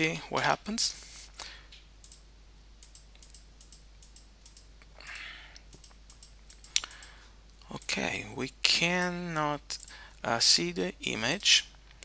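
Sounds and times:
computer mouse clicking: 1.7s - 2.2s, 2.8s - 7.2s.

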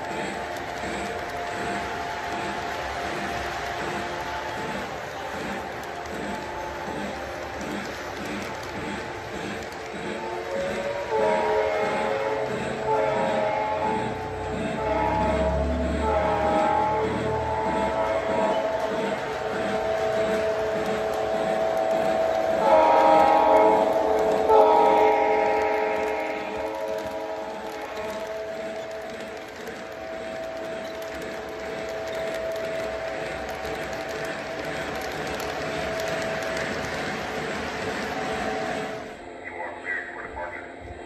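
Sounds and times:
wheels rumbling on track: 0.0s - 39.3s
locomotive engine drone: 0.0s - 41.0s
train horn blasts: 10.1s - 34.6s.

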